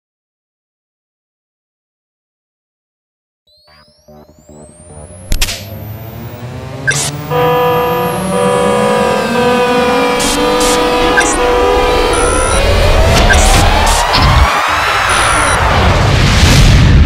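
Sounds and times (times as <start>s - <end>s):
synthesized drone: 3.5s - 16.2s
rising sweep: 3.5s - 16.4s
sharp cinematic hits: 4.6s - 17.0s.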